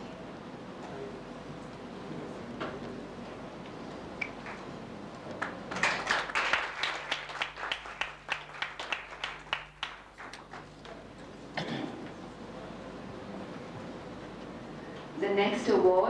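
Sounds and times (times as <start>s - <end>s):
audience clapping: 4.4s - 11.2s.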